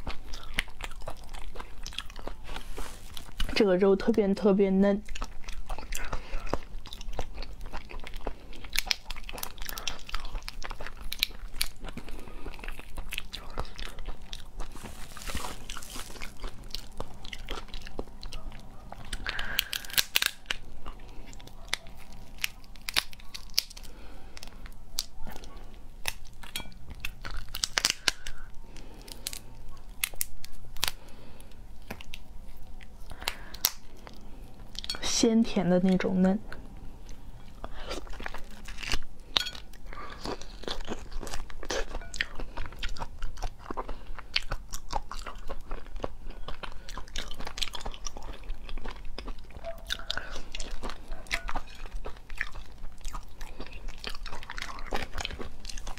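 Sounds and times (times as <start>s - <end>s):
biting and chewing: 0.0s - 35.0s, 36.5s - 55.9s
lobster shell crackling: 8.4s - 35.0s.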